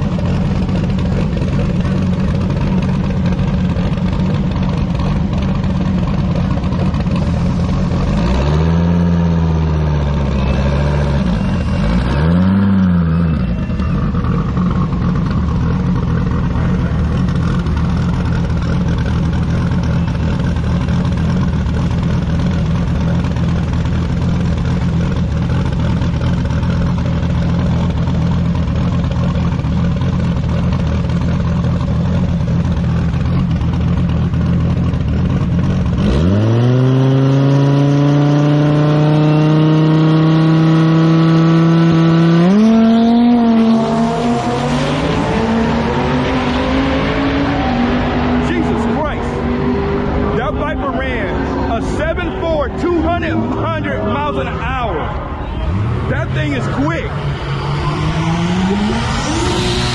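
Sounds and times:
drag car engine revving: 0:00.0 - 0:59.9.

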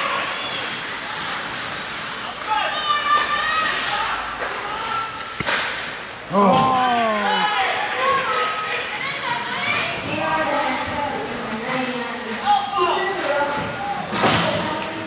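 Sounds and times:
voices shouting in echoing rink: 0:00.0 - 0:15.0
hockey sticks and puck knocks: 0:05.3 - 0:06.7, 0:13.2 - 0:15.0.

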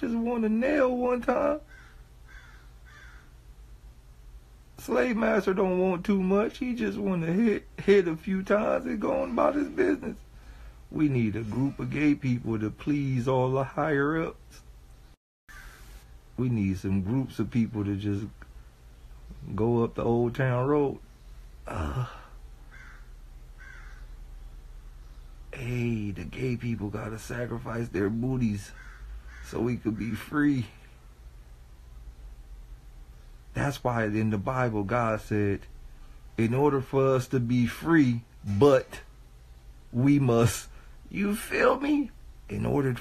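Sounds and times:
low steady hum: 0:00.0 - 0:43.0
faint bird calling: 0:01.3 - 0:03.5, 0:14.5 - 0:16.2, 0:21.0 - 0:25.6, 0:28.5 - 0:31.0.

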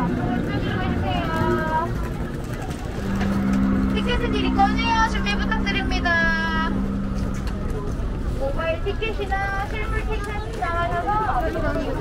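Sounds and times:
people talking: 0:00.0 - 0:12.0
street noise: 0:00.0 - 0:12.0
vehicle engine humming: 0:00.0 - 0:12.0.

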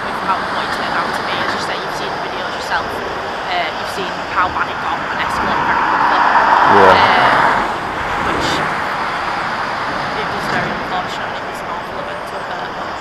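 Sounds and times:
lorry passing: 0:00.0 - 0:13.0
steady traffic noise: 0:00.0 - 0:13.0.

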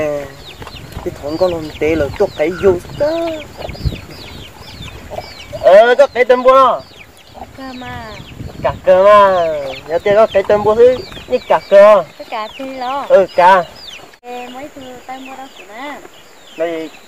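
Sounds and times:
chickens clucking: 0:00.0 - 0:17.0.

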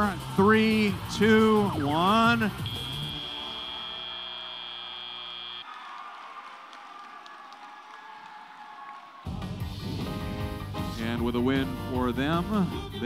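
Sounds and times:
electronic buzzer tone: 0:02.6 - 0:05.6
crowd applause: 0:03.2 - 0:09.6.

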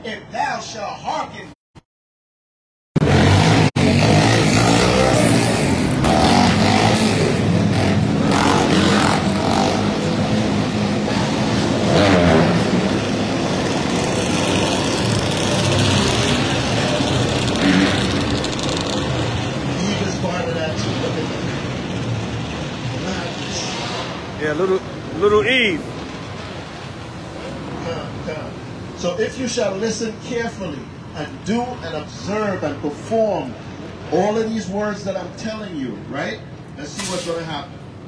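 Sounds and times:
motorcycle revving: 0:03.0 - 0:27.8
vehicle engines running: 0:03.0 - 0:38.0.

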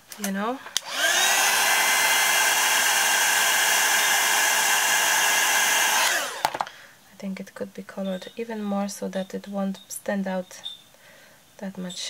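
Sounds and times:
heat tool blowing hot air: 0:00.8 - 0:06.4.

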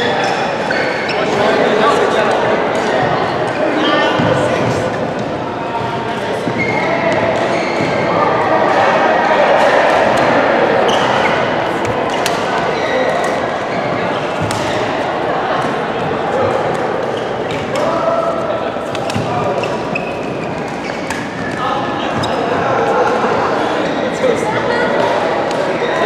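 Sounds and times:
babble of many voices: 0:00.0 - 0:26.0
rackets striking shuttlecock: 0:11.8 - 0:12.5, 0:18.9 - 0:19.8, 0:20.6 - 0:21.6.

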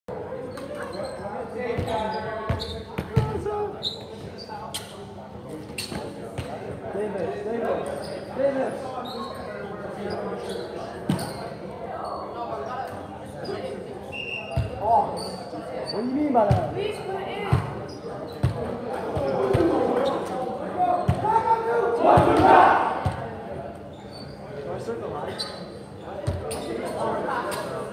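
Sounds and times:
chatter in a hall: 0:00.1 - 0:27.9
voices echoing in gymnasium: 0:00.1 - 0:27.9
ball bouncing on gym floor: 0:16.5 - 0:16.7.

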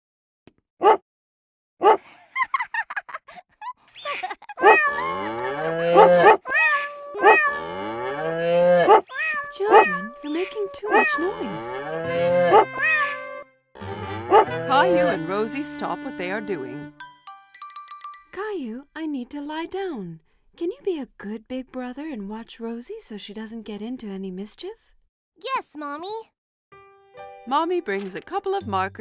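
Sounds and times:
toy keyboard animal calls: 0:09.5 - 0:11.8.

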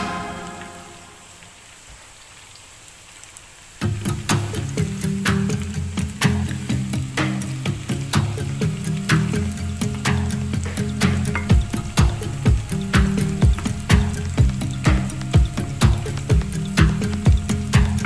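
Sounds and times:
background music with steady beat: 0:00.0 - 0:01.2, 0:03.8 - 0:18.0
onions frying in oil: 0:00.0 - 0:18.0.

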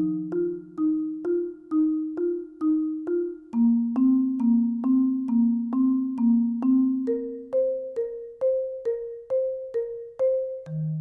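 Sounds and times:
marimba notes: 0:00.0 - 0:11.0.

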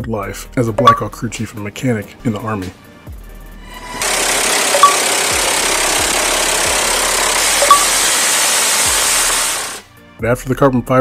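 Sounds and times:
helicopter rotor and turbine: 0:03.8 - 0:09.8.

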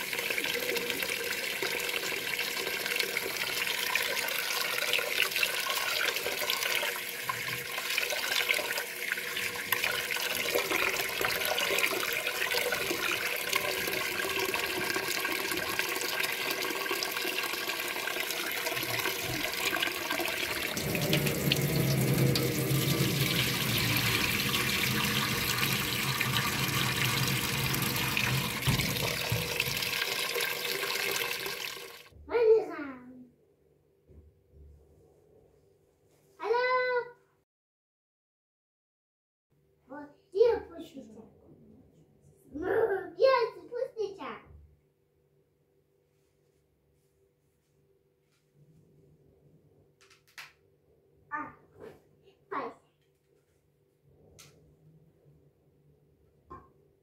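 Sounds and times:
tap water running into pot: 0:00.0 - 0:32.1
deeper tone: 0:20.8 - 0:24.4.

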